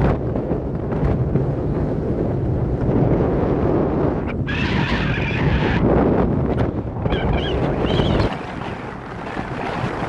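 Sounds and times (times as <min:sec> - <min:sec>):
car road and wind noise: 0:00.0 - 0:10.0.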